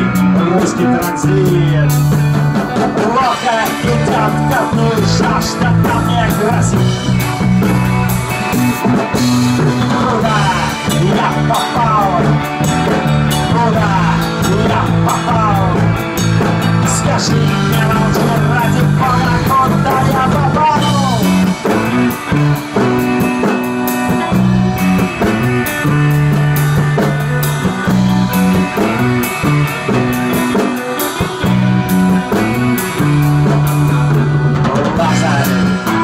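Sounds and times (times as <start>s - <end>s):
electric guitar bending notes: 0.0s - 36.0s
rock band instrumental: 0.0s - 36.0s.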